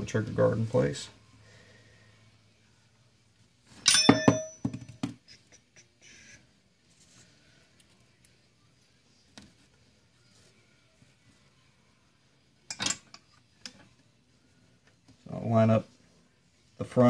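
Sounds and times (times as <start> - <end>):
metallic clank with ringing: 3.8 - 4.7.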